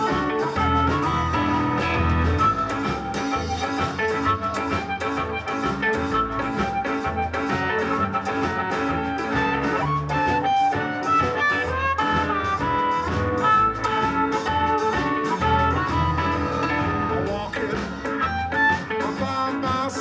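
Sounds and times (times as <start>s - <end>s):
amplified harmonica lead: 0.0s - 20.0s
steady drum beat: 0.0s - 20.0s
upright bass: 0.0s - 20.0s.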